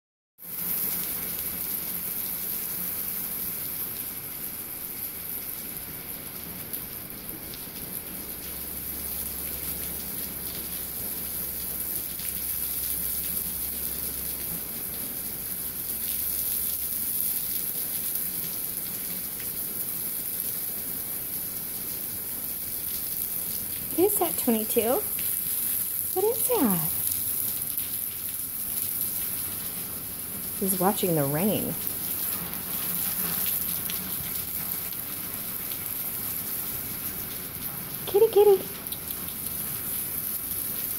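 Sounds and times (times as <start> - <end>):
steady rain falling: 0.4 - 40.9.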